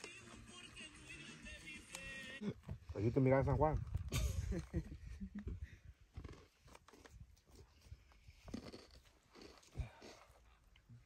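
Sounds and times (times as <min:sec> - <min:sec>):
faint crunches and knocks: 0:06.1 - 0:10.4.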